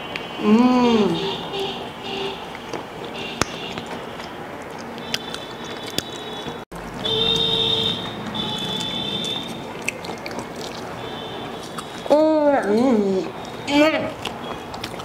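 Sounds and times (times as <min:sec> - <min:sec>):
people chewing fried food: 0:00.9 - 0:15.0
sharp wet clicks: 0:03.4 - 0:06.6, 0:08.2 - 0:15.0.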